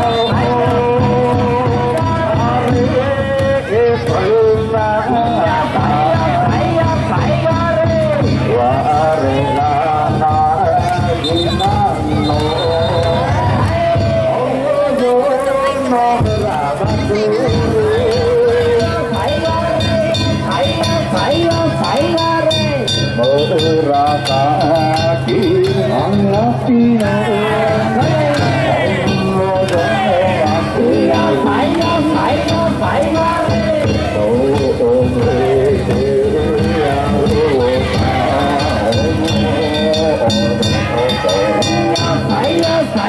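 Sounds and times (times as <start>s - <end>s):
taiko drum beats: 0.0s - 14.4s, 16.2s - 43.0s
men calling out: 0.0s - 43.0s
person singing ornamented notes: 0.0s - 43.0s.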